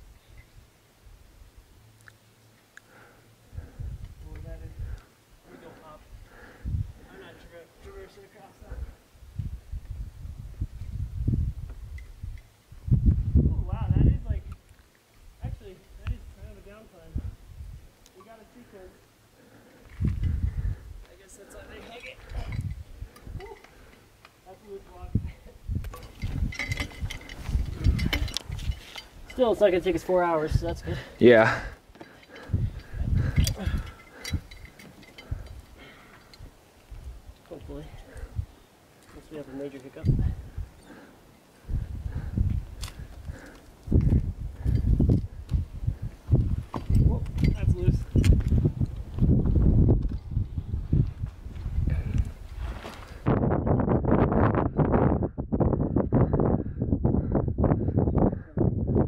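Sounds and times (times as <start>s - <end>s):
wind buffeting microphone: 3.5s - 5.1s, 6.0s - 7.2s, 8.6s - 14.6s, 15.2s - 18.0s, 19.8s - 23.9s, 24.9s - 38.7s, 39.3s - 59.0s.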